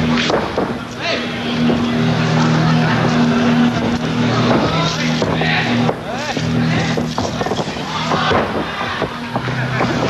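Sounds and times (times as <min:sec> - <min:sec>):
arena crowd voices: 0:00.0 - 0:10.0
low droning tone: 0:00.0 - 0:10.0.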